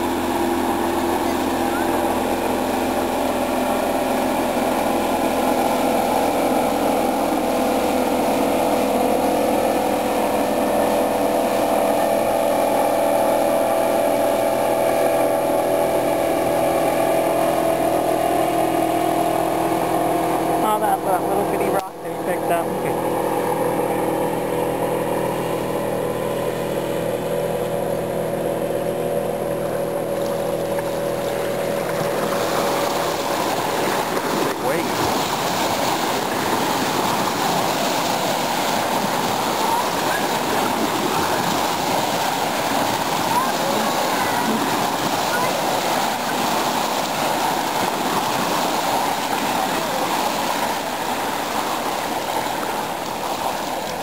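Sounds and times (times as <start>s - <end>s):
engine hum: 0.0s - 54.0s
waves splashing on stony shore: 30.0s - 54.0s.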